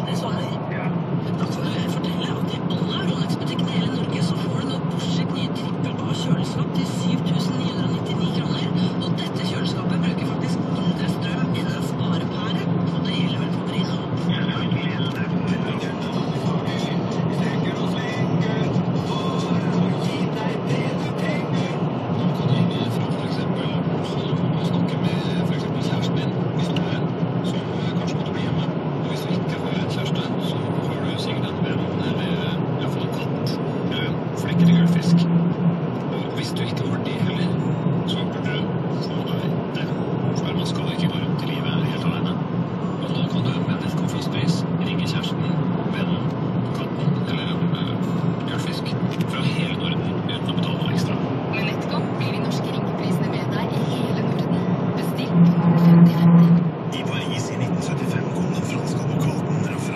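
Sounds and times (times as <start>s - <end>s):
car engine and road drone: 0.0s - 59.9s.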